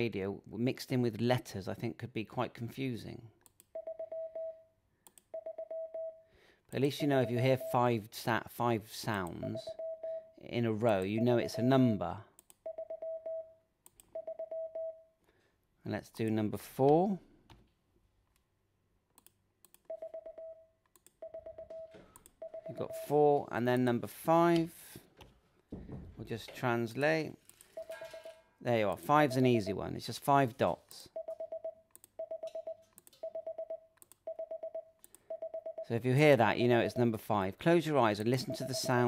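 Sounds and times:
morse code beeps: 3.8 - 4.7, 5.3 - 6.2, 9.4 - 10.3, 12.6 - 15.0, 19.9 - 23.1, 27.7 - 28.4, 29.1 - 29.8, 31.2 - 35.9, 38.3 - 39.0.

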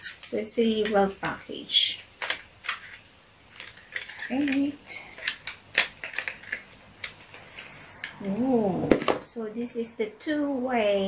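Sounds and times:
plastic wrap crinkling: 0.0 - 8.2.

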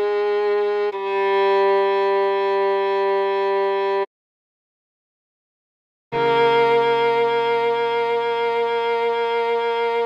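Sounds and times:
cello holding long note: 0.0 - 4.1, 6.2 - 10.0.

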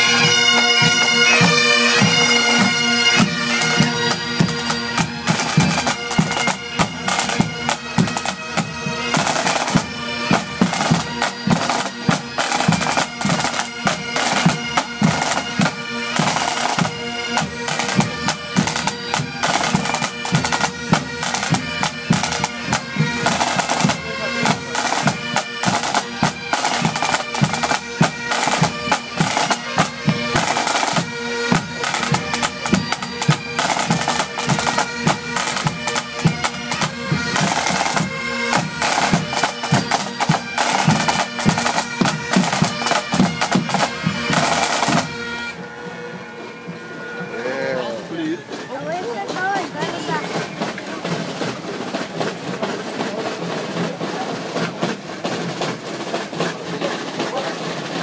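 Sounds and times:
rapid snare drum strokes: 0.0 - 45.2, 48.5 - 58.0
bagpipes with drones: 0.0 - 58.0
tenor drums: 0.0 - 58.0.

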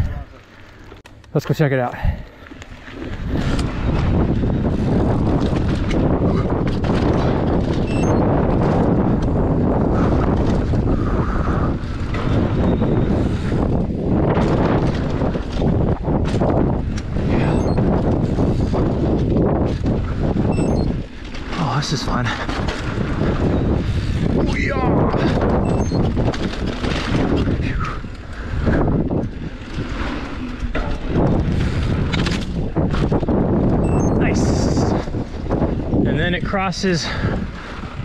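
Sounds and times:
tyres rumbling on dirt: 0.0 - 34.2
wind buffeting microphone: 0.0 - 38.0
bike knocks and rattles: 2.5 - 10.9, 11.8 - 33.9.

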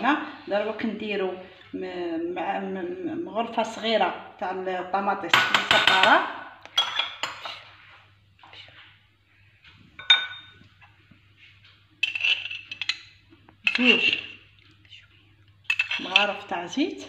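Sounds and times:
spoons scraping ceramic bowl: 12.0 - 14.4.

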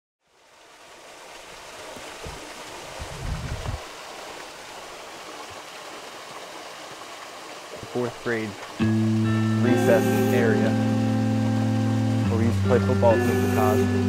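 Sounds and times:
rain and runoff water: 0.2 - 14.0.

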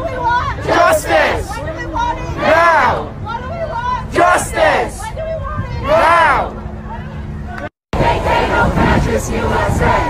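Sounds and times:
protesters shouting together: 0.0 - 7.0
crowd din: 0.0 - 10.0.

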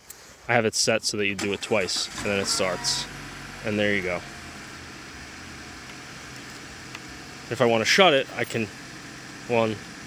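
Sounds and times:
car engine idling: 1.4 - 10.0.

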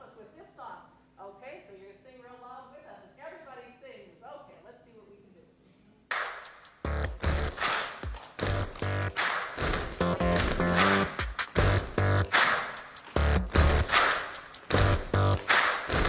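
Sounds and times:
upbeat song over loudspeakers: 6.1 - 16.0.

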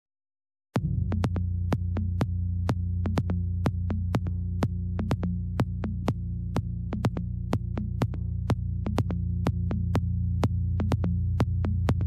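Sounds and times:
deep house music: 0.8 - 12.0.

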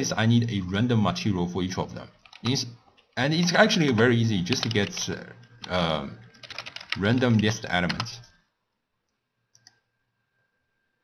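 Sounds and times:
computer mouse clicks: 2.2 - 2.6, 4.0 - 8.1, 9.1 - 9.8.

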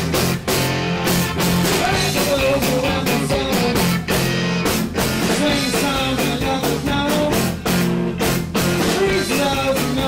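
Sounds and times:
live band playing rock music: 0.0 - 10.0.

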